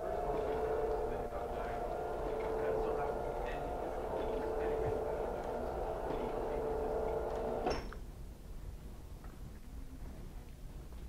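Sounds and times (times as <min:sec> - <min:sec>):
machine hum: 0:00.0 - 0:07.7.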